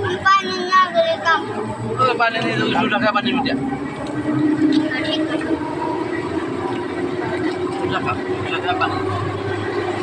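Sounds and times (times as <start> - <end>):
vehicle running hum: 0.0 - 10.0.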